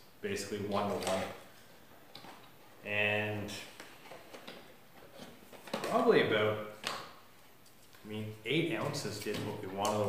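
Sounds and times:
man speaking: 0.2s - 1.4s, 2.8s - 3.8s, 5.8s - 6.8s, 8.0s - 10.0s.

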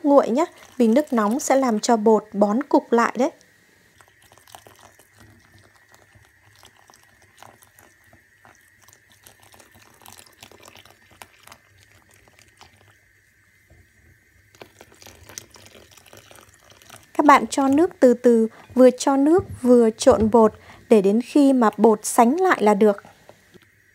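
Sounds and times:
chopsticks stirring batter: 4.0s - 13.0s.

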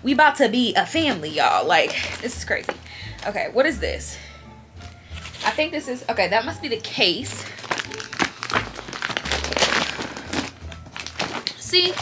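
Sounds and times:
plastic packaging crinkling: 5.1s - 5.6s, 7.2s - 12.0s.

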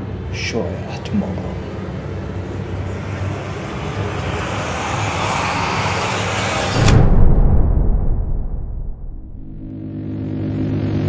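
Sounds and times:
rushing noise swell: 0.0s - 9.8s
deep boom with low rumble: 6.8s - 9.8s.

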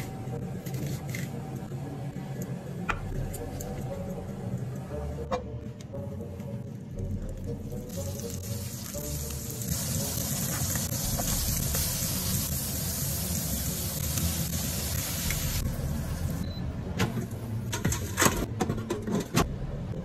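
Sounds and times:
burger patties sizzling in a pan: 8.2s - 15.6s.

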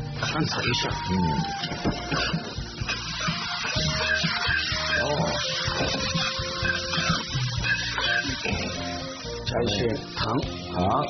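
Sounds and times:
background music: 0.0s - 11.0s
metal spatula scraping a wok: 1.6s - 9.4s.

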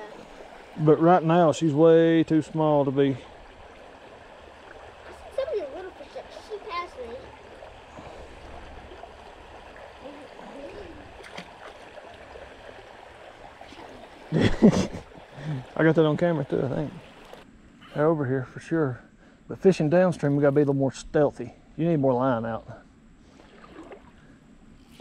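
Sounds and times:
creek flowing over rocks: 0.0s - 17.4s.

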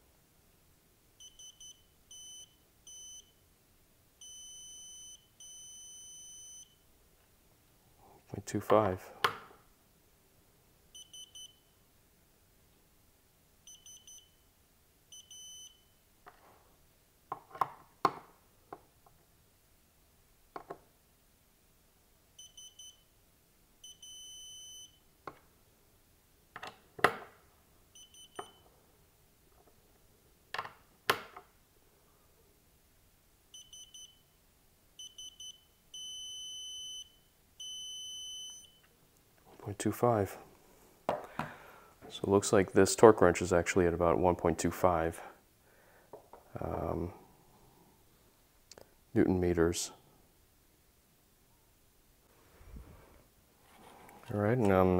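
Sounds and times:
steady beep tone: 4.2s - 6.8s, 11.0s - 11.8s, 13.7s - 14.4s, 35.0s - 38.8s.

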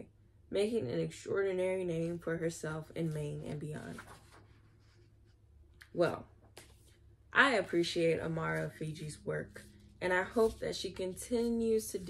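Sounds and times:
book pages rustling: 3.0s - 5.4s, 6.4s - 7.1s, 8.4s - 12.0s.

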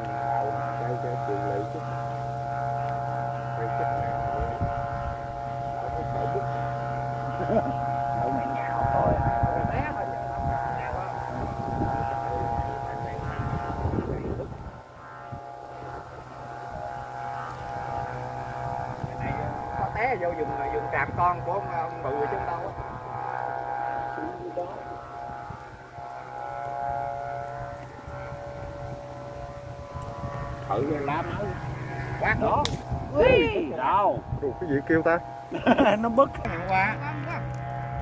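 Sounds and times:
gusty wind noise: 0.0s - 38.0s
kite flutes droning: 0.0s - 38.0s.

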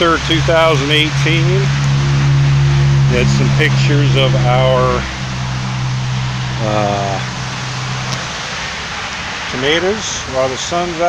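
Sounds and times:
low mechanical hum: 0.0s - 9.2s.

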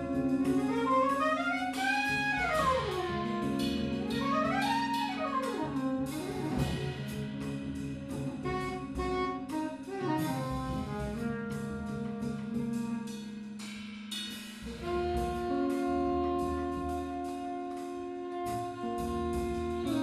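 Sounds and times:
soprano saxophone solo: 0.0s - 7.4s, 8.3s - 13.2s, 14.7s - 20.0s
electric guitar: 0.0s - 13.1s
double bass: 0.0s - 13.8s, 14.6s - 20.0s
drums: 0.0s - 20.0s.

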